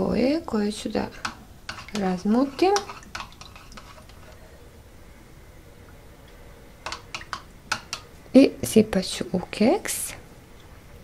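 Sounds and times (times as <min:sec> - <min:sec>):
liquid stirring: 0:01.0 - 0:04.6, 0:06.8 - 0:08.2.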